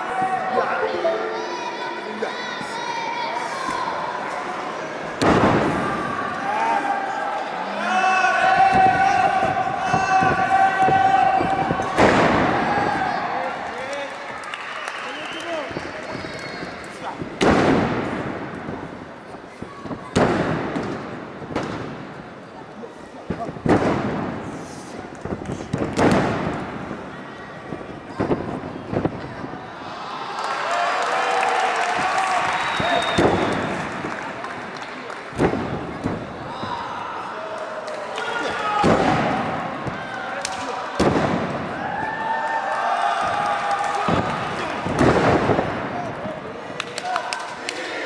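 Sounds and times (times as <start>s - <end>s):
crowd voices and shouts: 0.0s - 48.0s.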